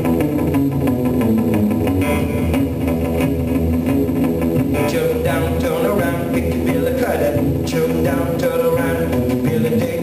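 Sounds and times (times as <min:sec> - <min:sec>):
acoustic guitar blues rhythm: 0:00.0 - 0:10.0.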